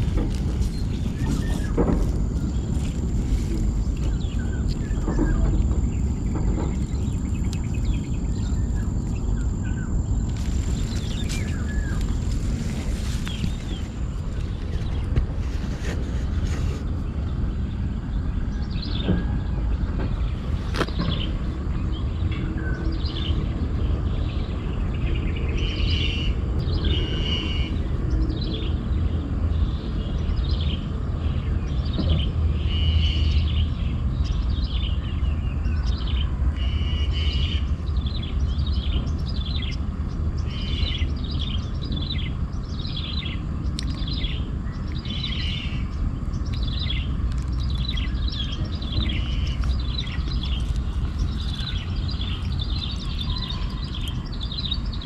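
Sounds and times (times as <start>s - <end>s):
bird chirping: 0.0s - 55.0s
low rumble: 0.0s - 55.0s.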